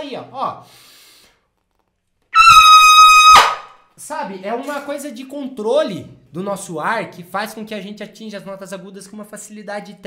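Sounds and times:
trumpet high note: 2.4s - 3.7s.

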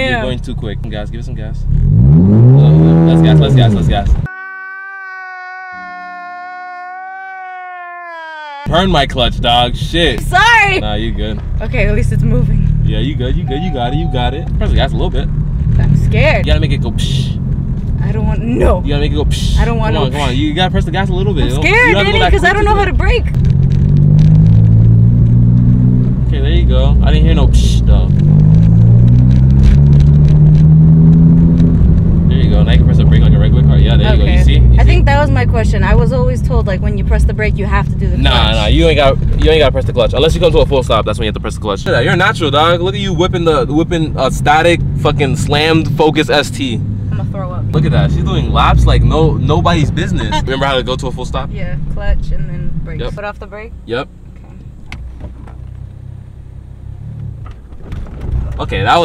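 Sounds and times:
man wailing: 4.2s - 8.7s
car engine droning at low revs: 8.7s - 59.0s.

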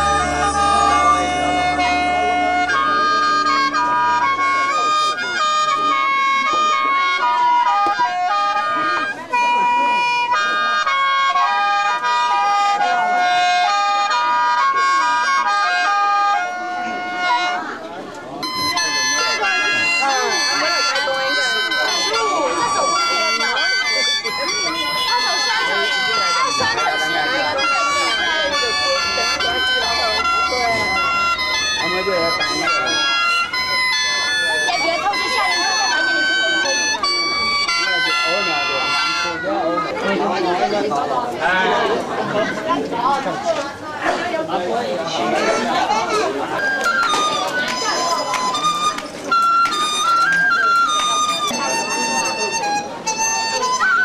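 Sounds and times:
mouth organ melody: 0.0s - 17.6s, 18.4s - 39.4s
people chattering: 0.0s - 54.0s.

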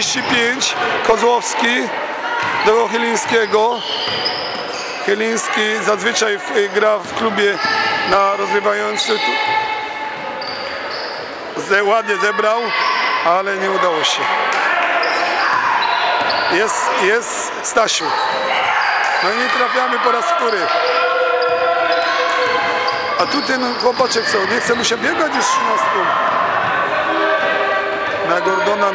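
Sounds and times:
echoing court noise: 0.0s - 28.9s
basketball bouncing on wooden court: 2.4s - 2.6s.

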